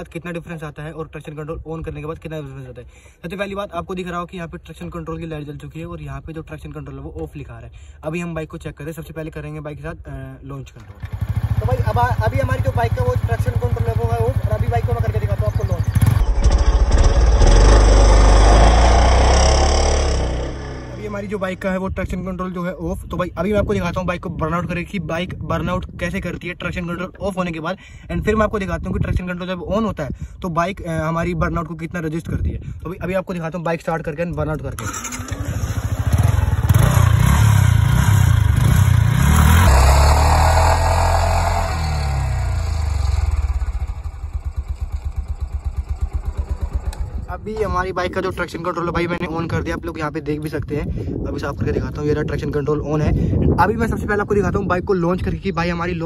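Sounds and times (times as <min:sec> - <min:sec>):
motorcycle engine revving hard: 0:11.0 - 0:21.2, 0:34.8 - 0:47.0.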